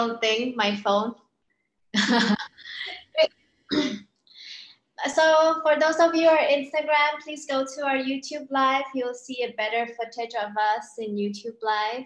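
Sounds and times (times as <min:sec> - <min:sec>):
woman laughing: 0:02.0 - 0:03.3.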